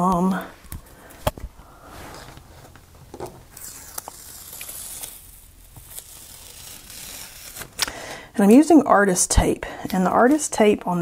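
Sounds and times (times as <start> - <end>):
tape peeling off paper: 3.4 - 7.9.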